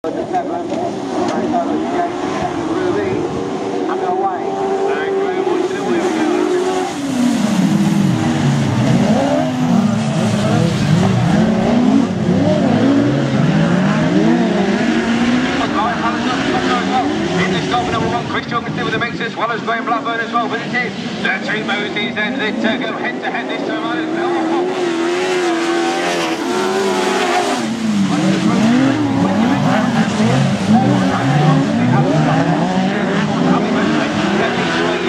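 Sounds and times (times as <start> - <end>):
racing car engines revving: 0.0 - 35.0.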